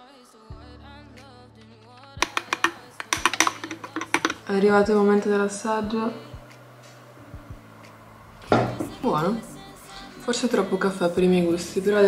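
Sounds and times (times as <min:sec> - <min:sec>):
faint background music: 0:00.0 - 0:12.0
spoon clinking against glass: 0:02.2 - 0:04.4.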